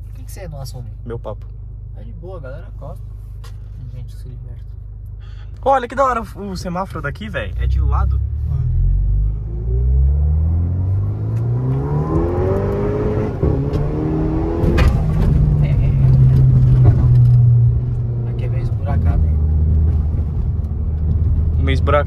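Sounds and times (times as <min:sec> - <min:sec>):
car engine accelerating: 0:02.9 - 0:22.0
exhaust crack: 0:04.6 - 0:22.0.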